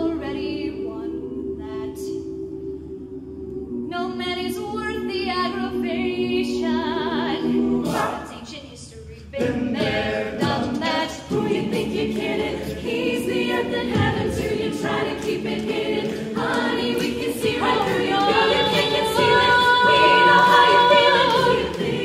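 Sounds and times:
a cappella group singing: 0.0s - 8.4s, 9.2s - 22.0s.

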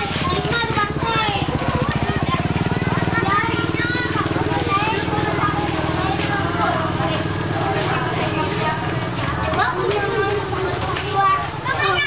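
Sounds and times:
children calling and shouting: 0.0s - 12.0s.

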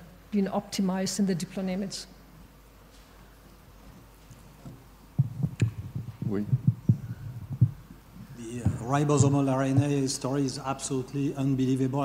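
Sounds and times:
microphone handling thumps: 4.6s - 10.2s.

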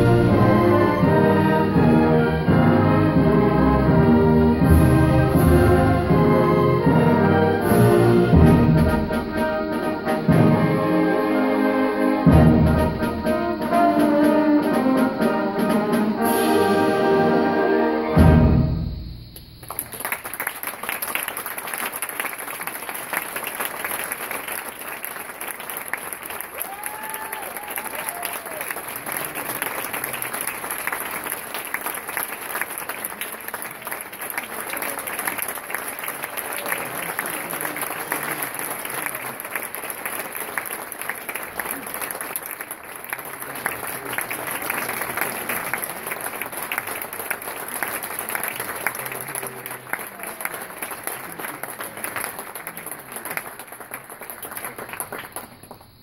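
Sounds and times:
calls from crowd: 19.6s - 55.9s
audience applauding: 19.6s - 56.0s.

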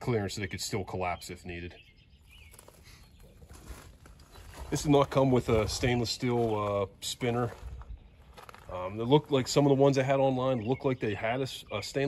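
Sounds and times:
faint bird chirp: 0.1s - 6.3s.

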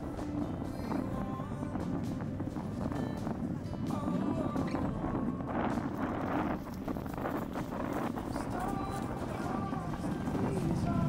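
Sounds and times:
indistinct outdoor voices: 0.0s - 11.0s
wind buffeting microphone: 0.0s - 11.0s.

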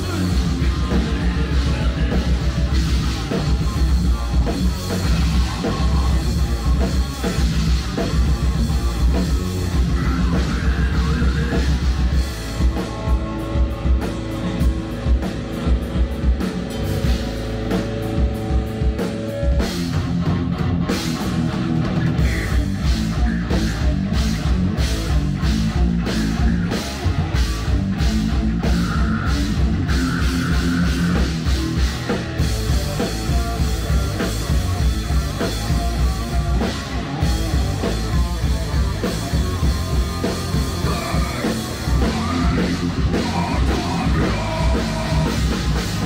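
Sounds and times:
bass guitar: 0.0s - 46.0s
distorted guitar: 0.0s - 46.0s
drum kit: 0.0s - 46.0s.

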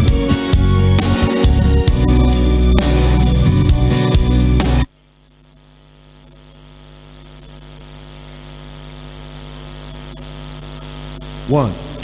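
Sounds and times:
electrical hum of amplifiers: 0.0s - 12.0s.

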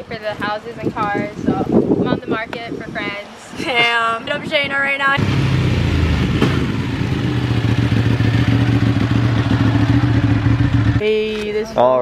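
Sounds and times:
vehicle engine running: 5.2s - 11.9s.

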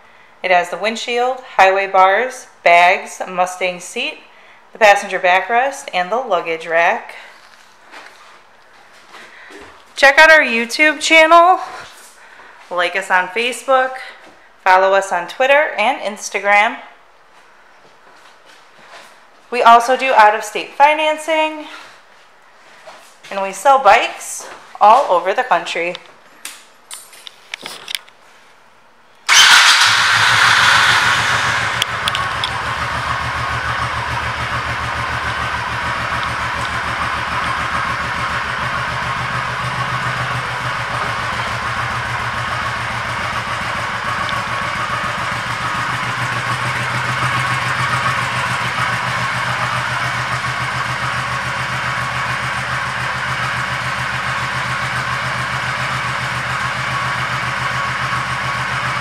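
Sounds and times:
motorcycle engine starting and idling: 29.3s - 59.0s.

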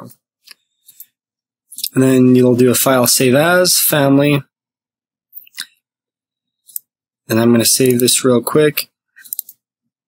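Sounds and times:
computer mouse clicks: 7.8s - 8.2s, 9.2s - 9.6s.

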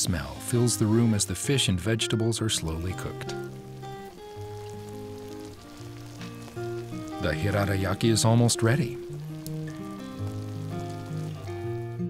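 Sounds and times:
background music of held notes: 0.0s - 12.0s
glaze sizzling and bubbling: 0.0s - 12.0s.

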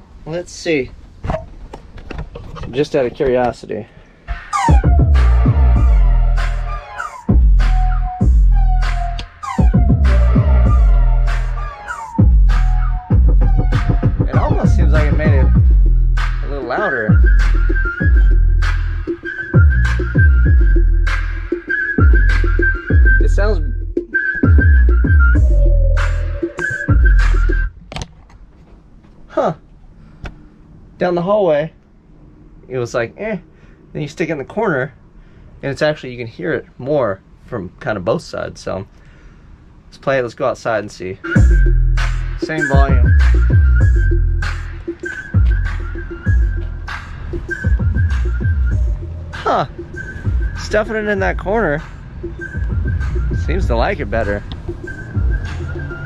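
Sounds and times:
loud bass-heavy music: 4.3s - 27.7s, 41.4s - 56.0s
high whistle-like melody: 4.3s - 27.8s, 41.2s - 56.0s.

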